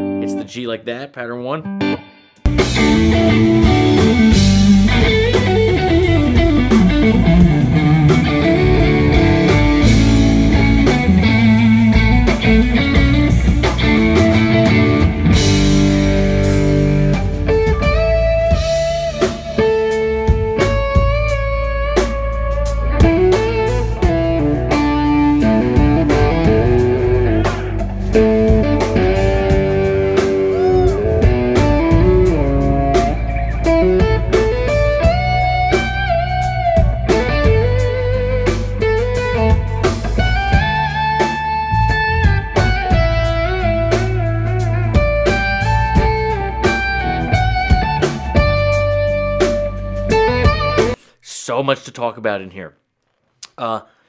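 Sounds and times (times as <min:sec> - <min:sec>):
lead electric guitar melody: 0:00.0 - 0:00.4, 0:01.6 - 0:51.0
bass guitar: 0:00.0 - 0:00.7, 0:01.3 - 0:51.1
drums: 0:02.4 - 0:51.2.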